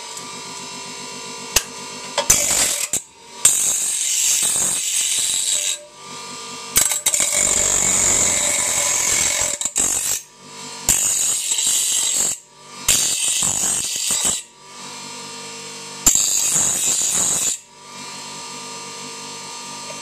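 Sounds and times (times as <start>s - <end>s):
bench grinder grinding steel: 0.0s - 20.0s
grinder motor running: 0.0s - 20.0s.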